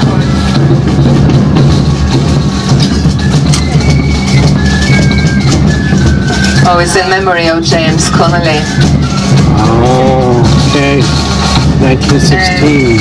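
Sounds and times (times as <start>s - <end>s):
bass drum: 0.0s - 13.0s
marching band playing: 0.0s - 13.0s.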